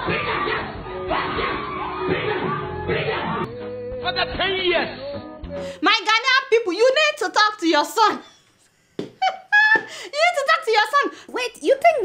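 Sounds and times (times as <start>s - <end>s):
woman laughing and exclaiming: 9.2s - 10.5s.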